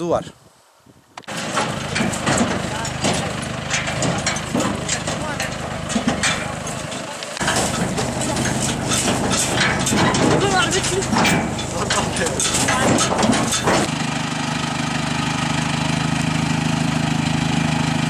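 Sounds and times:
tractor engine idling: 1.2s - 18.0s
workers talking: 1.4s - 13.9s.

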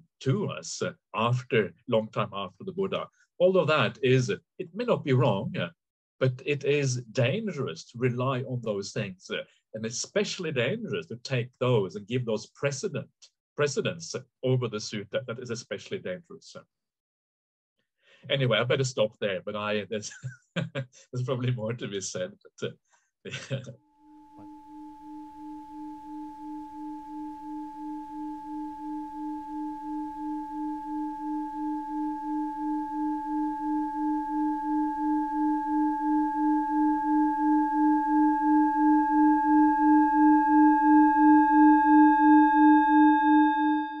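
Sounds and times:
singing bowl pulsing tone: 23.8s - 44.0s.

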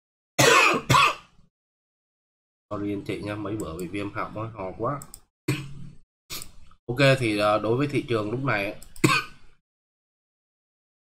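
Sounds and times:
man coughing: 0.4s - 1.2s, 9.0s - 9.4s.

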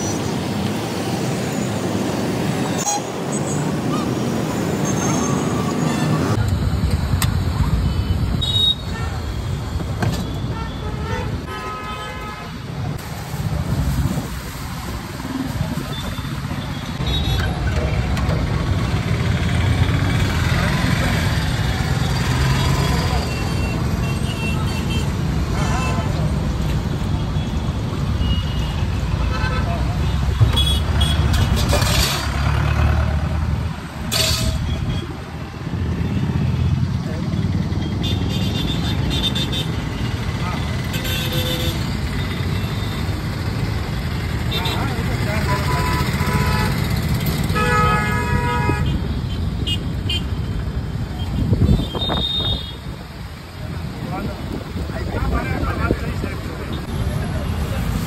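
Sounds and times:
vehicle engines rumbling: 0.0s - 58.0s
vehicle horns honking: 10.3s - 12.6s, 44.5s - 46.8s, 47.4s - 50.4s, 51.4s - 52.8s.

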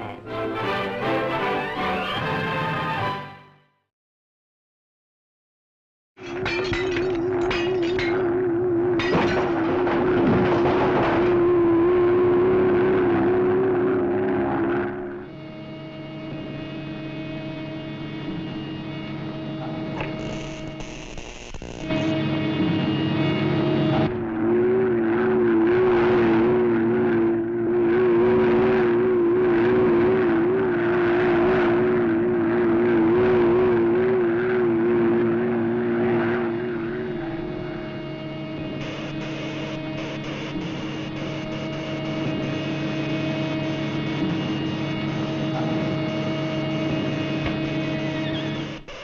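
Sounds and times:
robot mechanical drone warbling: 6.3s - 15.4s, 23.7s - 49.0s.

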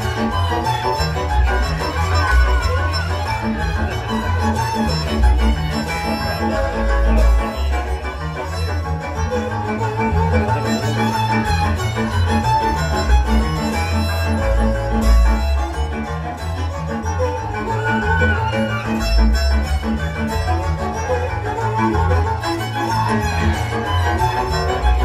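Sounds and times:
lead violin: 0.0s - 25.0s
off-beat string accompaniment: 0.0s - 25.0s
pulsing double bass: 0.0s - 25.0s.

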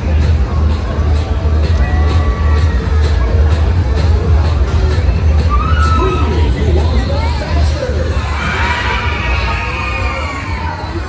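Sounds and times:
bass-heavy ride music: 0.0s - 11.0s
riders screaming: 5.5s - 6.4s.

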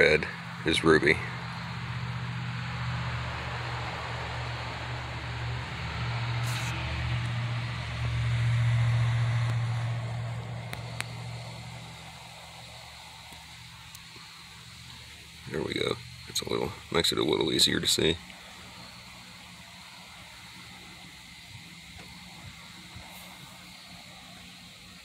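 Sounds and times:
steady low hum: 0.0s - 25.0s
hiss: 3.4s - 17.0s, 18.3s - 25.0s.

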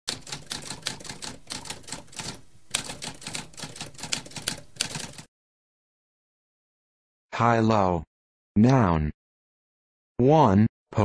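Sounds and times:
typewriter typing rapidly: 0.1s - 5.3s.

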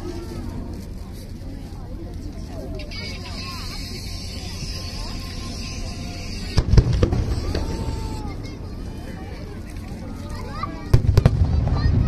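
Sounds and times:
fireworks shells booming: 6.5s - 8.0s, 10.9s - 12.0s.

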